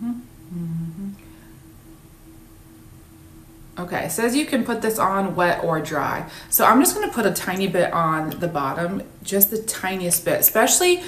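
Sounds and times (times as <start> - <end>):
woman humming: 0.0 - 1.4
faint steady background hum: 0.0 - 11.0.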